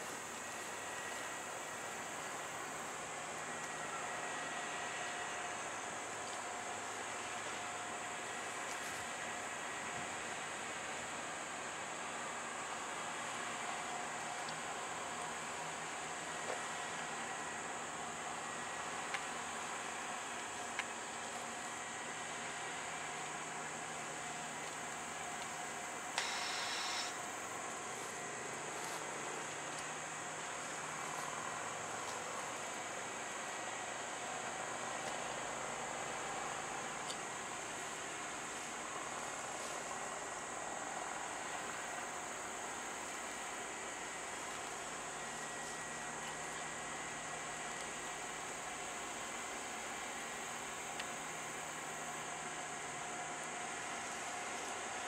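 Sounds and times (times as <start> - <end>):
steady hiss: 0.0 - 55.0
short burst of noise: 26.2 - 27.3.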